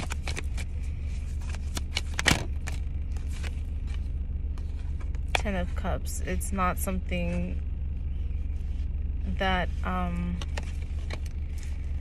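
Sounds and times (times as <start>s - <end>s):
cards clicking and rustling: 0.0s - 5.4s
low car cabin hum: 0.0s - 12.0s.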